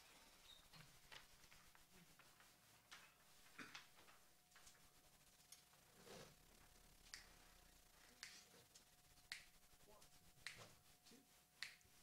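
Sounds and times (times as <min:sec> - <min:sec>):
faint finger snaps: 0:07.1 - 0:07.4, 0:08.2 - 0:08.5, 0:09.2 - 0:09.6, 0:10.4 - 0:10.7, 0:11.6 - 0:11.9.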